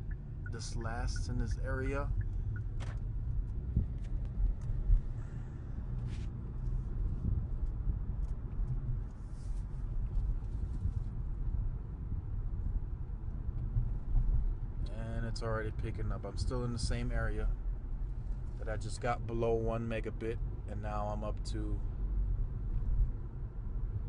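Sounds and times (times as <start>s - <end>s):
car cabin rumble: 0.0s - 24.0s.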